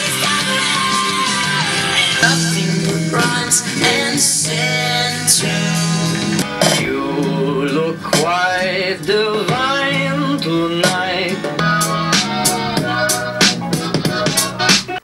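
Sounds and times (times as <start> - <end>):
songs with singing and guitar: 0.0 - 15.0.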